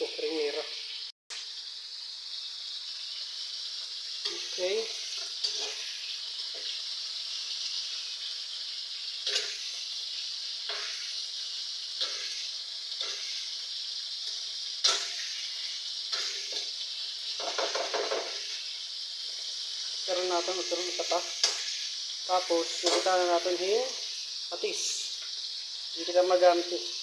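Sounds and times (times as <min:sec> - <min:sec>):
food sizzling in a wok: 0:00.0 - 0:27.0.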